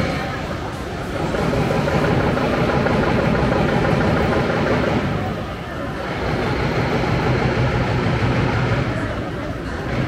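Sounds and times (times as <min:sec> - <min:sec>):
city street noise: 0:00.0 - 0:10.0.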